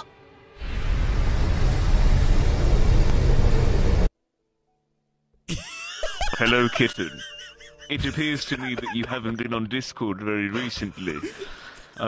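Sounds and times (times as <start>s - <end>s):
deep rumbling noise: 0.2s - 4.1s.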